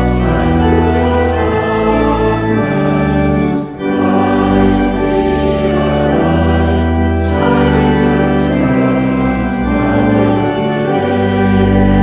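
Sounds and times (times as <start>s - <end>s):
choir singing a hymn: 0.0s - 12.0s
organ accompaniment: 0.0s - 12.0s.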